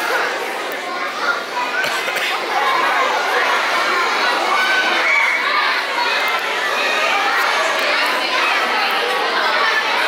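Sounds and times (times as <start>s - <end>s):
children shouting and cheering: 0.0s - 10.0s.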